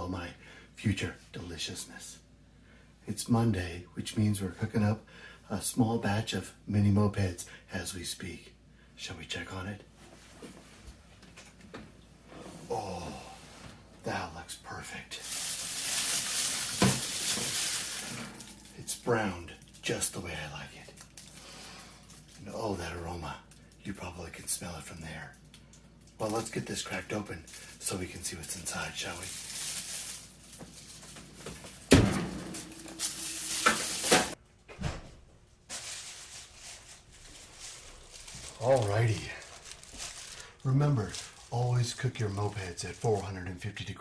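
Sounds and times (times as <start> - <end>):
food sizzling: 15.2 - 18.8, 32.5 - 34.4
kitchen rustling and clatter: 15.2 - 19.0, 26.2 - 43.3
oven door thump: 31.9 - 32.9.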